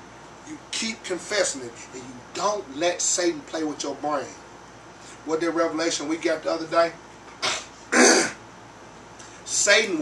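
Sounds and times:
man clearing his throat: 0:07.4 - 0:08.4.

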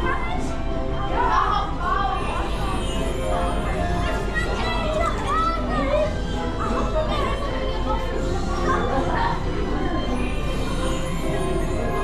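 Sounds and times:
background music: 0:00.0 - 0:12.0
children calling and chattering: 0:00.0 - 0:12.0.

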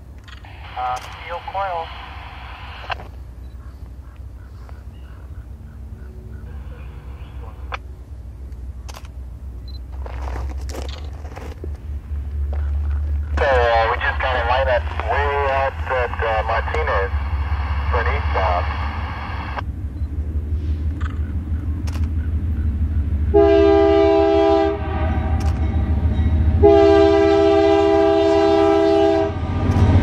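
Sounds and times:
locomotive engine rumble: 0:00.0 - 0:30.0
person talking: 0:13.4 - 0:17.2, 0:17.9 - 0:18.7.

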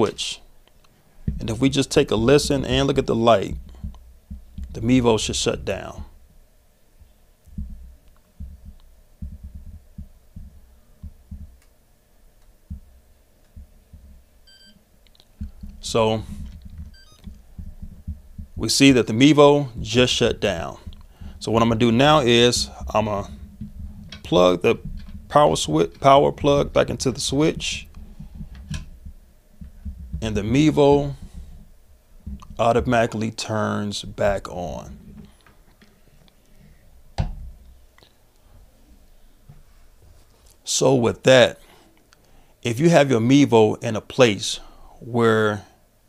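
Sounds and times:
faint room hum: 0:00.0 - 0:46.0
handling noise: 0:00.6 - 0:38.0.

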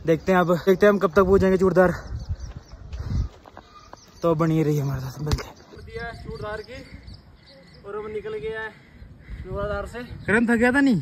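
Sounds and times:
quiet outdoor background: 0:00.0 - 0:11.0.

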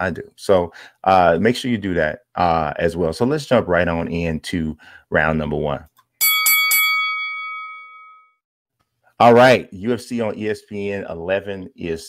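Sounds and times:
boxing ring bell ringing: 0:06.2 - 0:08.4.

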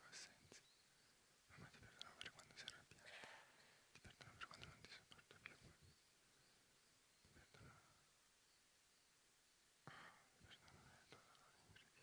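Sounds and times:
people whispering: 0:00.0 - 0:00.6, 0:01.5 - 0:05.9, 0:07.3 - 0:08.1, 0:09.8 - 0:12.0
mouth clicks: 0:01.9 - 0:03.4.

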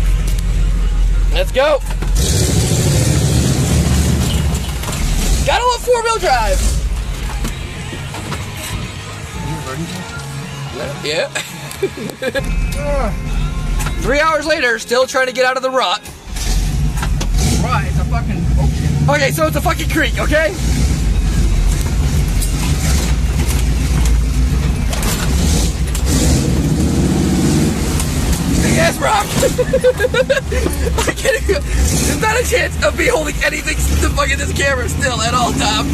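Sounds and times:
engine rumbling under load: 0:00.0 - 0:14.5, 0:16.1 - 0:35.9.

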